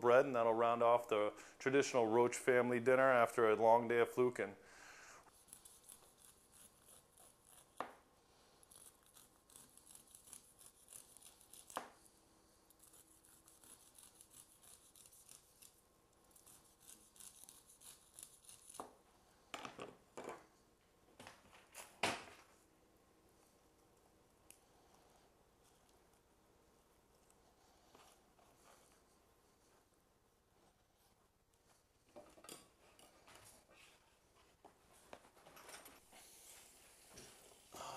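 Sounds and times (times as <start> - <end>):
knife scraping corn kernels: 5.3 - 7.8, 8.6 - 12.0, 12.7 - 18.8.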